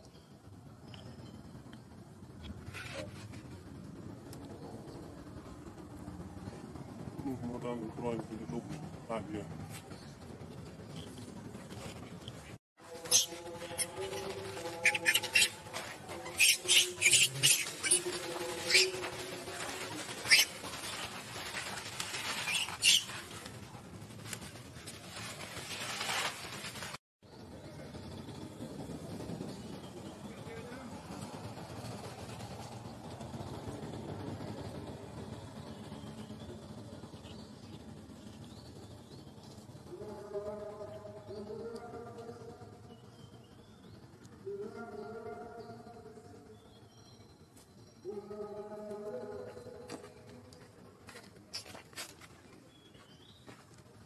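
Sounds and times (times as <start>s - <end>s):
baby monkey squeaking: 13.0s - 14.2s, 14.8s - 15.6s, 16.2s - 18.1s, 18.7s - 19.0s, 20.2s - 20.5s, 22.4s - 23.2s.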